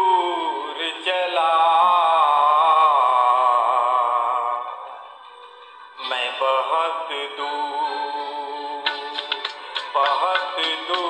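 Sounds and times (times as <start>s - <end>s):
man singing: 0.0s - 5.2s, 6.0s - 11.0s
instrumental accompaniment: 7.9s - 11.0s
quick percussion beat: 8.8s - 11.0s.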